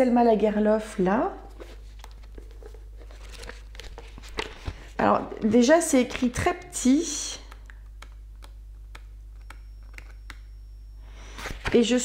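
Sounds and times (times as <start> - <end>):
paper rustling and crackling: 1.5 - 4.9.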